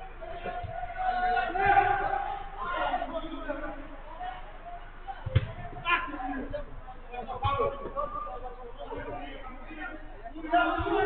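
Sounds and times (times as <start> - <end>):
players shouting in distance: 0.0 - 6.7, 9.0 - 11.0
football being kicked: 5.2 - 5.9.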